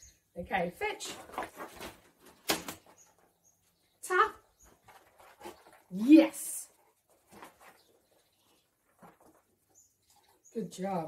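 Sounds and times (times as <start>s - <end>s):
dog scuffling: 0.9s - 3.7s, 4.3s - 10.4s.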